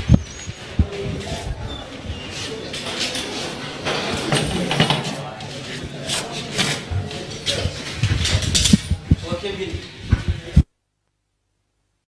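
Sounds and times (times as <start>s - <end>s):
people talking while walking: 0.0s - 10.7s.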